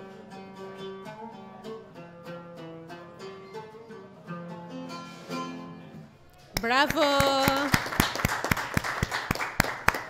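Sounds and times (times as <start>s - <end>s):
audience applause: 6.7s - 10.0s.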